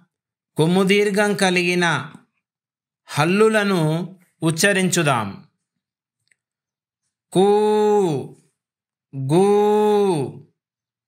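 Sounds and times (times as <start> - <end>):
person speaking: 0.0 - 10.8.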